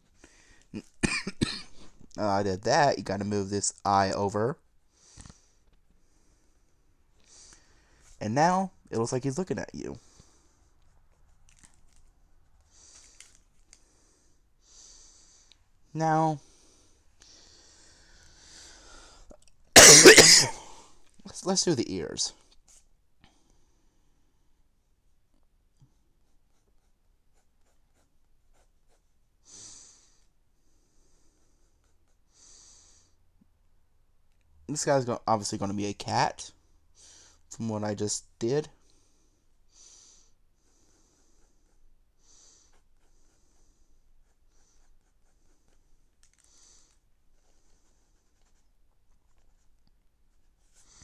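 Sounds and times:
person breathing: 0.0s - 0.8s, 4.9s - 8.2s, 10.0s - 10.9s, 12.6s - 19.4s, 29.4s - 33.2s, 36.6s - 37.5s, 38.8s - 48.2s, 50.7s - 51.0s
pencil scratching on paper: 26.2s - 29.2s, 31.3s - 32.3s, 40.7s - 51.0s.

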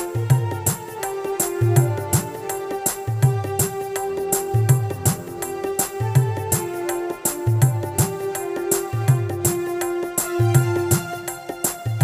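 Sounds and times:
keyboard held notes: 0.0s - 12.0s
steady drum beat: 0.0s - 12.0s.

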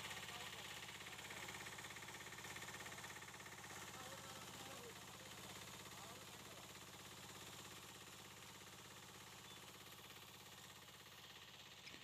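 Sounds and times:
engine-driven water pump running: 0.0s - 12.0s.

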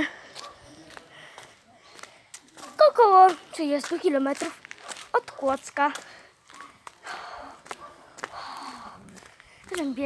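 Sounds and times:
boy breathing: 0.0s - 2.4s, 6.0s - 10.0s.

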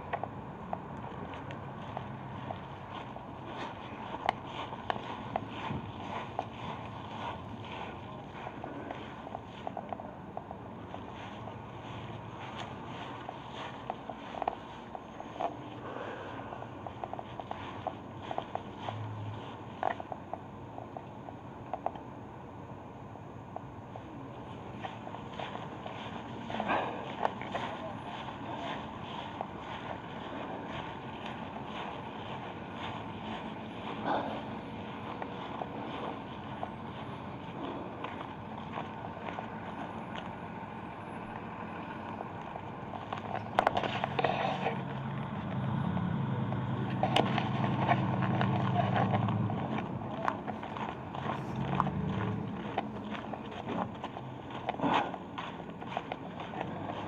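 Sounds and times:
footsteps outdoors: 0.0s - 57.0s
vehicle engine hum: 0.0s - 57.0s.

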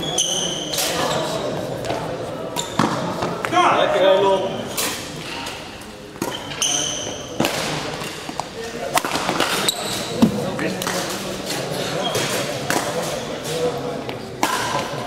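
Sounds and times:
shoe squeaks on court floor: 0.0s - 1.6s, 2.6s - 3.1s, 6.2s - 7.4s, 9.4s - 10.2s, 11.6s - 13.8s.

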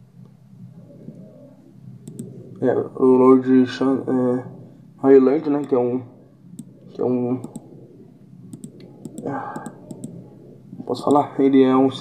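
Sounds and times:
computer clicks: 2.0s - 2.4s, 5.6s - 5.8s, 7.4s - 7.7s, 8.5s - 10.2s
faint mumbling voice: 8.9s - 12.0s.

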